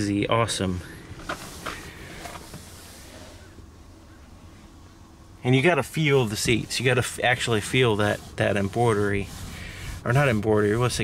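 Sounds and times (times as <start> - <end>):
faint hiss: 0.0 - 11.0
low steady hum: 0.0 - 11.0.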